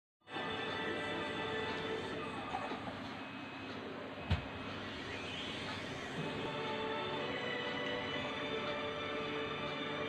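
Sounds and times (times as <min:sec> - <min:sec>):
music from a television: 0:00.2 - 0:10.0.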